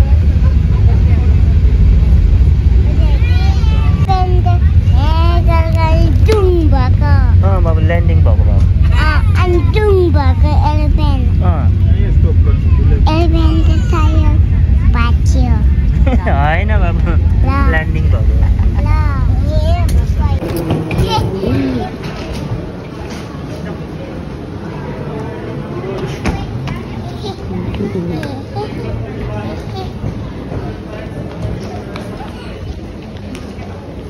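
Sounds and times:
airliner cabin rumble: 0.0 - 24.6
child's voice: 2.9 - 7.4, 8.8 - 11.4, 12.5 - 15.9, 17.4 - 18.1, 18.7 - 22.3, 26.2 - 30.1
young child singing: 3.0 - 7.3, 13.1 - 15.6.

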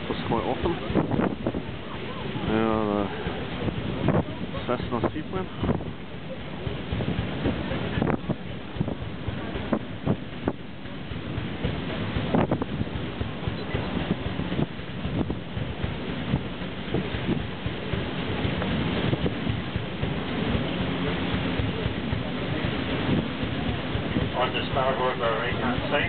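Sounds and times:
paddle steamer running: 0.0 - 26.0
wind buffeting the microphone: 0.0 - 26.0.

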